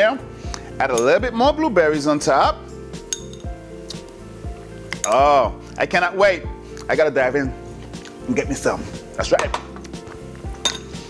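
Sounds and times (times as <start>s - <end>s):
background music with steady beat: 0.0s - 11.0s
metal spoon clinking on bowl: 3.1s - 3.5s, 10.6s - 11.0s.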